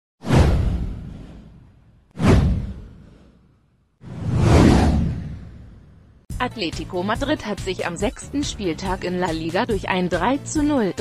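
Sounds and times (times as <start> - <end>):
whoosh with deep rumble: 0.2 - 6.3.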